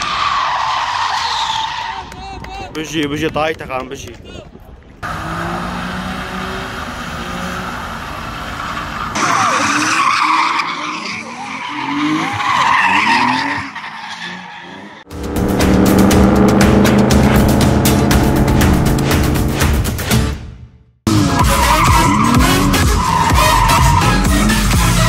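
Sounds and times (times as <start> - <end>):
car engine revving: 15.0 - 20.4
music with steady beat: 15.1 - 20.4.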